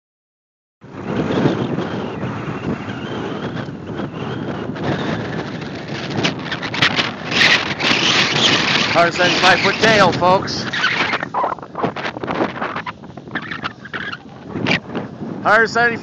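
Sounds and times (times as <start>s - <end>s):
wind buffeting microphone: 0.8s - 16.0s.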